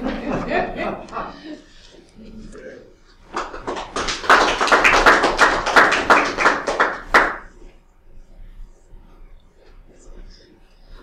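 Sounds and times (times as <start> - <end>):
people clapping: 3.1 - 7.7.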